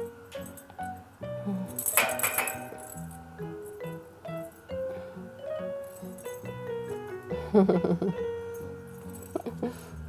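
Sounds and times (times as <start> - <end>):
background music with simple melody: 0.0 - 10.0
bell rattling inside toy ball: 1.7 - 4.8, 5.6 - 7.1, 8.5 - 9.6.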